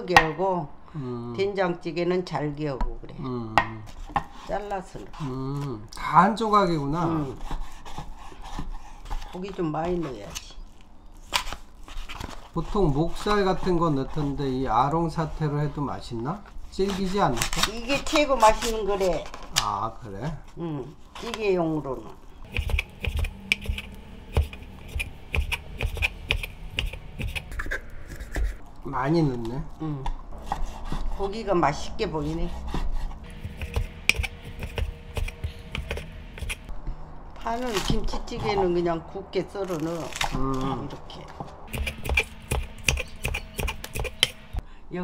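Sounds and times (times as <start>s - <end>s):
knife chopping on wooden board: 22.5s - 27.4s, 32.5s - 36.7s, 41.7s - 44.5s.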